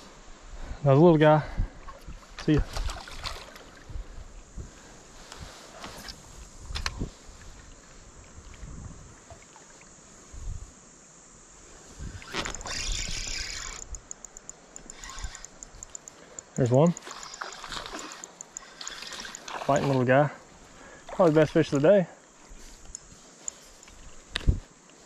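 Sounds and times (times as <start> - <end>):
water splashing and sloshing: 1.8 - 4.0, 7.2 - 10.0, 14.7 - 21.9.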